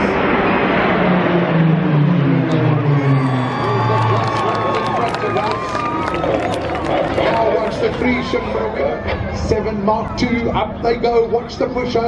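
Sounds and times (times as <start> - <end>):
propeller planes droning overhead: 0.0 - 12.0.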